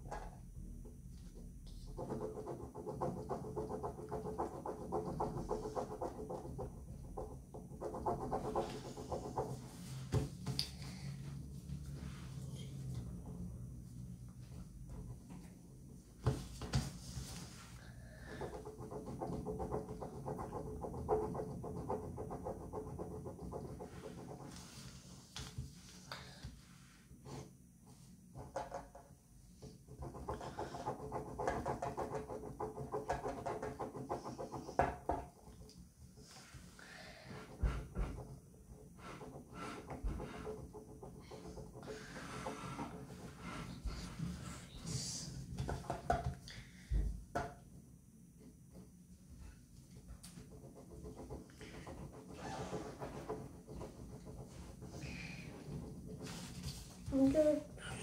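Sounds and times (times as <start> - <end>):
pen scratching on paper: 1.9 - 7.0, 7.6 - 10.0.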